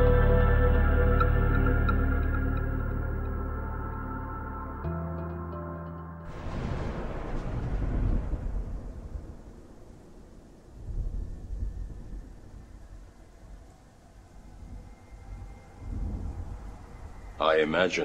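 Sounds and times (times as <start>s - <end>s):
thunder rumbling: 6.3s - 17.6s.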